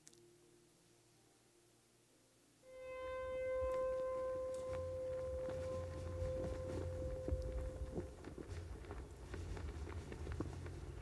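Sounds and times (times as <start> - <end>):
held musical note: 2.6 - 8.7
low rumble: 2.9 - 11.0.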